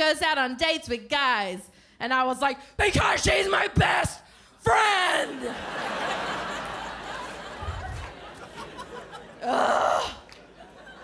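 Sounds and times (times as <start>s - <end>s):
loud gasp: 9.4s - 10.3s.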